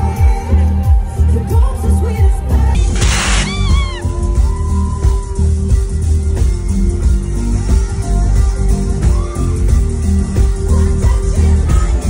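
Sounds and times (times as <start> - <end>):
live pop band playing: 0.0 - 12.0
cymbal crash: 2.8 - 4.0.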